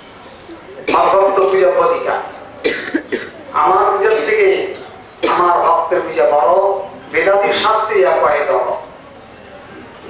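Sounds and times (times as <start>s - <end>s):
man coughing: 0.8s - 1.5s, 2.6s - 3.4s, 4.1s - 4.5s
man talking: 0.8s - 2.3s, 3.5s - 8.9s.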